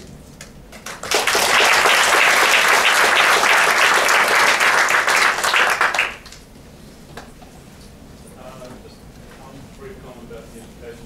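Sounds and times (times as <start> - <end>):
audience applauding: 0.7 - 6.4.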